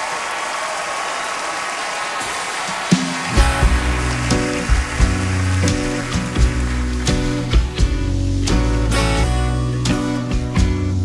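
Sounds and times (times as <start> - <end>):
plucked acoustic guitar: 3.4 - 11.0
upright bass: 3.4 - 11.0.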